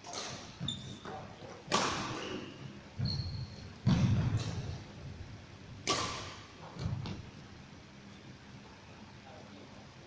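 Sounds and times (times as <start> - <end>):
racket striking shuttlecock: 1.7 - 2.2, 5.8 - 6.5.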